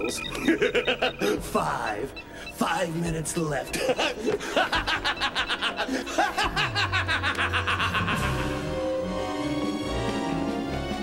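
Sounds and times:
background music: 0.0s - 11.0s
man laughing: 0.2s - 1.6s, 3.7s - 8.8s.

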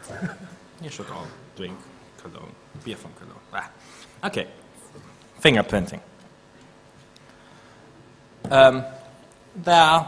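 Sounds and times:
low steady hiss and hum: 0.0s - 10.0s.

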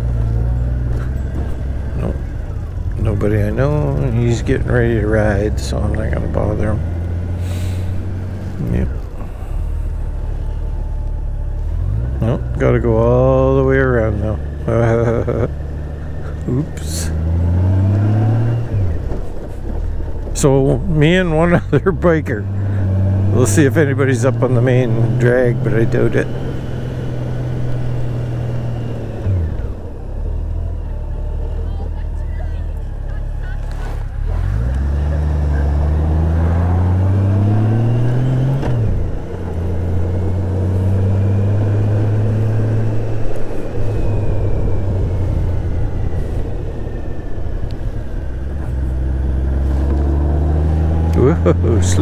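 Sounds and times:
motorcycle engine revving while riding: 0.0s - 20.4s, 21.0s - 32.2s, 33.0s - 52.0s.

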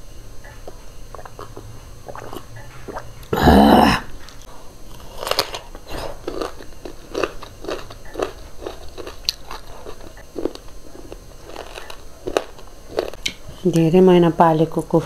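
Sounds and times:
crunchy chewing of cucumber: 0.6s - 13.3s.

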